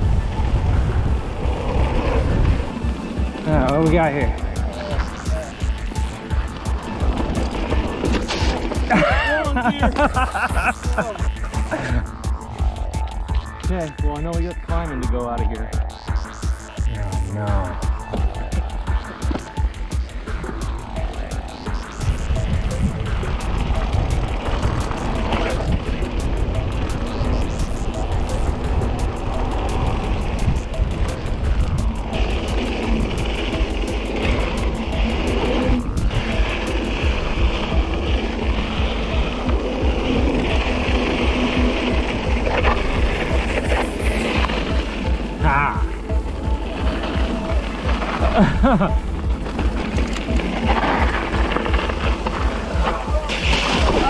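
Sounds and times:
bike rattling over bumps: 0.0 - 54.0
tyres on dirt: 0.0 - 54.0
wind rushing over microphone: 0.0 - 54.0.

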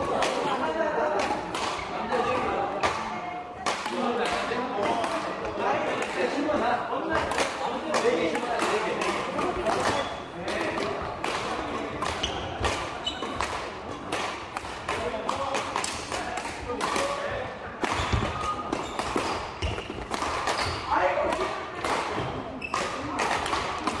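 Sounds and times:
players' voices in a hall: 0.0 - 24.0
rackets striking shuttlecock: 7.1 - 24.0.

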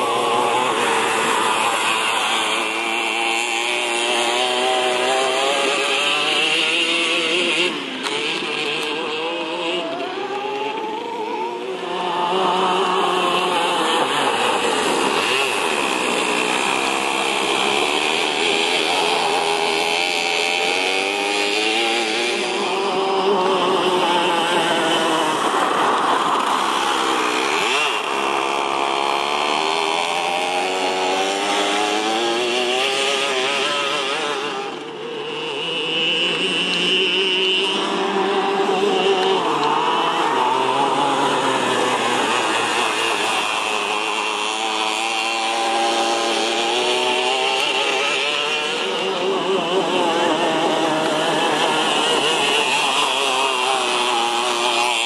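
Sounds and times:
go-kart engine revving: 0.0 - 55.0.

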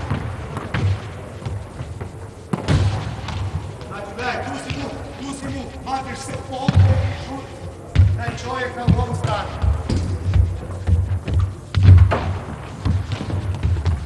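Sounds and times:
voices calling: 0.0 - 11.7
running footsteps: 0.0 - 14.0.

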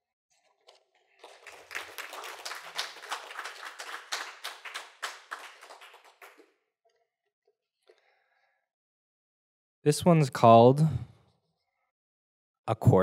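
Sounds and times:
small audience clapping: 0.6 - 6.6.

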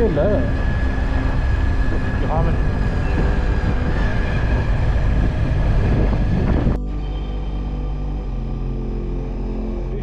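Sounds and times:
vehicle road and wind noise: 0.0 - 7.6
thin whine: 0.0 - 10.0.

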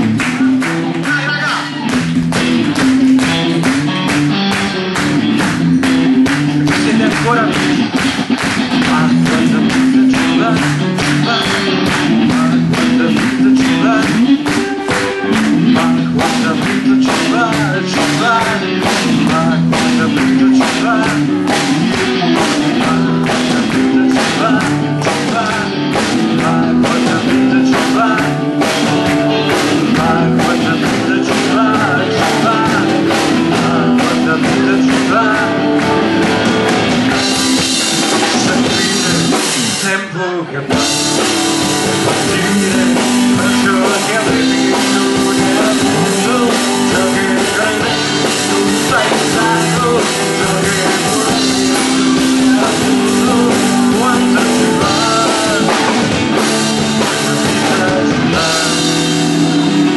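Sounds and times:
drum kit beat: 0.0 - 40.1, 40.7 - 59.9
electric guitars: 0.0 - 59.9.

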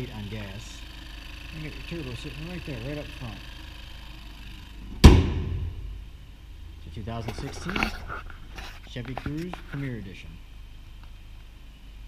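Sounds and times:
car hood slammed shut: 5.0 - 6.0.

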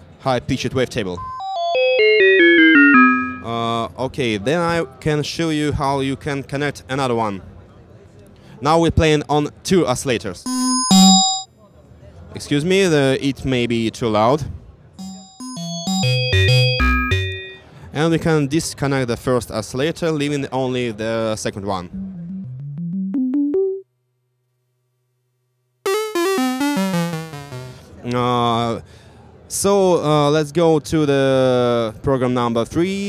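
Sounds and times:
clicks at note changes: 2.2 - 3.5, 22.0 - 23.8, 25.9 - 27.8
synth descending note run: 22.0 - 23.6, 25.9 - 27.8.

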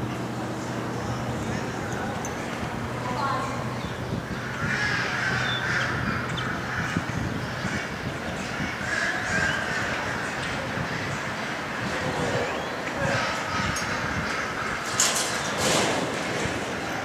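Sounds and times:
people talking: 0.4 - 3.9, 4.9 - 14.8
ducks quacking: 3.3 - 15.8.

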